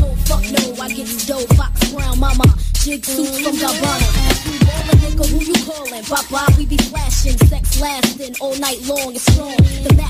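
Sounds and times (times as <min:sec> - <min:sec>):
rapping over a beat: 0:00.0 - 0:10.0
deep bass drum hits: 0:04.0 - 0:05.4.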